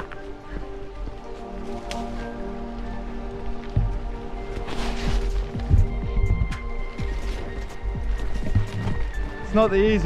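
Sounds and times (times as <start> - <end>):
music with steady held tones: 0.0 - 10.0
low regular thumping beat: 5.3 - 9.4.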